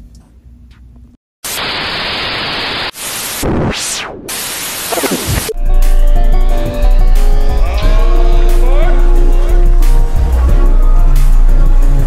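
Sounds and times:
static hiss with pitch sweeps: 1.4s - 5.6s.

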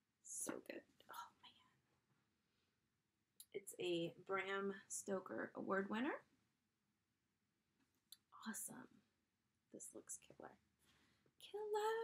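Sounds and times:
soft whisper: 0.4s - 1.8s, 8.2s - 9.0s.

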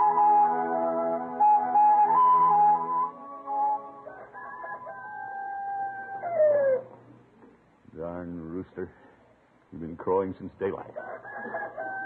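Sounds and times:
music bridge: 0.0s - 4.6s
rooster crowing: 3.9s - 6.9s, 11.0s - 12.0s.

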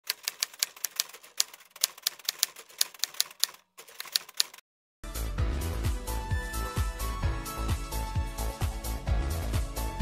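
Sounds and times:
keyboard typing clicks: 0.1s - 4.6s.

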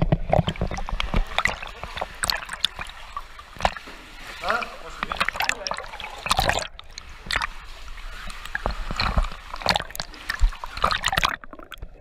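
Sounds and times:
water splashing from swimming: 0.0s - 12.0s.

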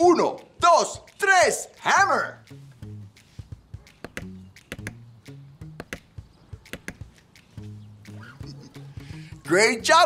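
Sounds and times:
light music with low notes: 0.0s - 10.0s.

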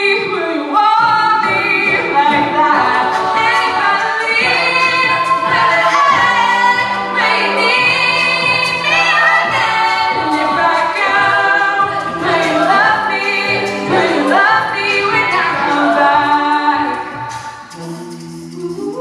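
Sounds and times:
women singing a cappella: 0.0s - 19.0s.

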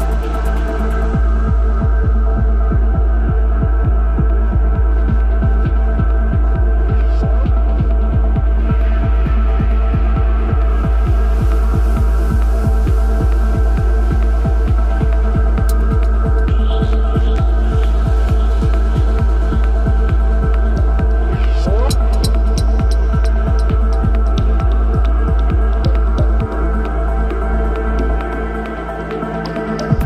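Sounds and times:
heavy sub-bass drone: 0.0s - 30.0s.

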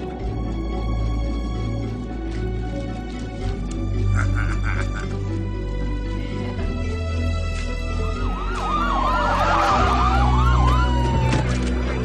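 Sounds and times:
siren yelping: 8.1s - 12.0s.

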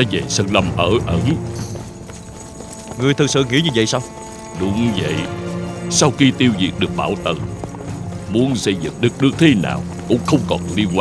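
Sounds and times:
horse hooves clip-clopping: 0.0s - 11.0s
soft background music: 0.0s - 11.0s.

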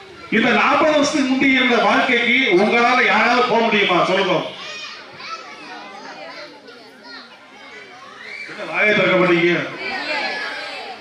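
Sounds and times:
children chattering and calling: 0.0s - 11.0s
man's amplified speech: 0.3s - 4.6s, 8.6s - 9.8s.

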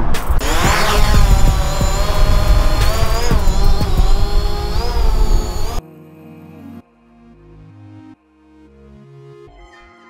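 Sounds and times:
drone propeller whine: 0.4s - 5.8s.

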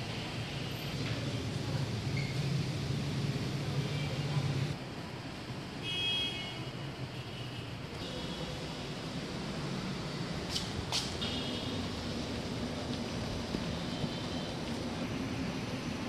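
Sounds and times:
city traffic noise: 0.0s - 16.0s.

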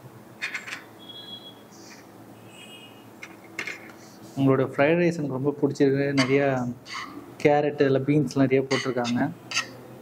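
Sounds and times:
metal spoon scraping a pan: 6.2s - 7.2s, 8.7s - 9.8s.

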